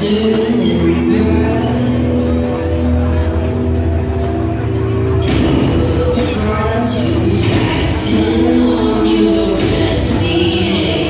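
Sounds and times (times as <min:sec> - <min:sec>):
entrance music over pa: 0:00.0 - 0:11.0.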